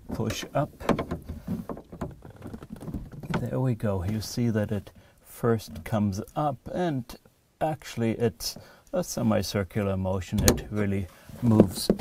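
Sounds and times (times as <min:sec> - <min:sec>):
pry bar creaks and knocks: 0:00.0 - 0:03.5, 0:10.4 - 0:10.8.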